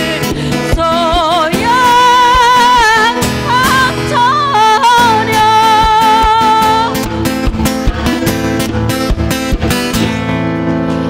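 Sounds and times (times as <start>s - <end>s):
person singing with vibrato: 0.0s - 7.4s
acoustic guitar strumming: 0.0s - 11.0s.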